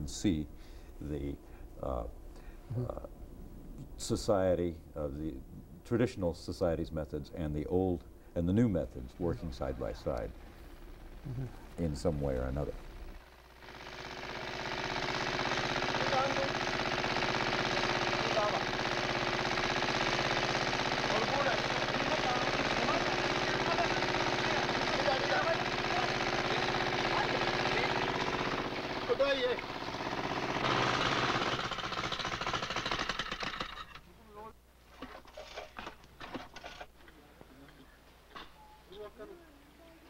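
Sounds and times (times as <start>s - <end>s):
small engine water pump running: 12.8s - 34.0s.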